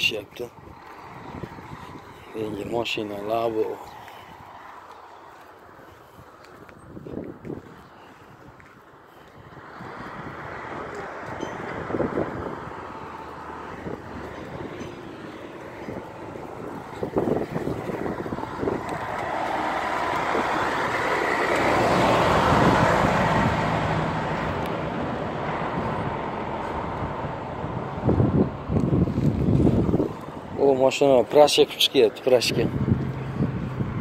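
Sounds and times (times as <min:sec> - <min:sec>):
truck driving past: 0:08.9 - 0:34.0.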